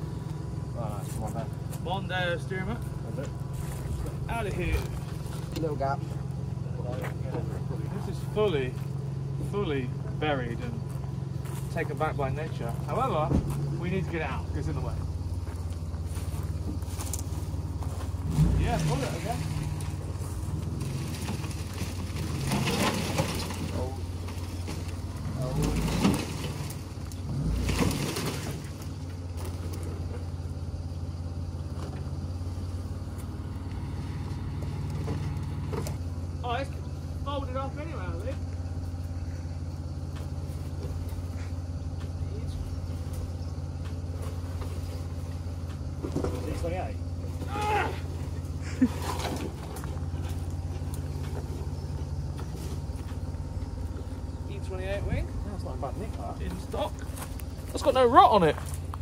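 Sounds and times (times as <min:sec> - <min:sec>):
car crunching through dead brush: 0:00.0 - 0:59.0
engine idling: 0:00.0 - 0:59.0.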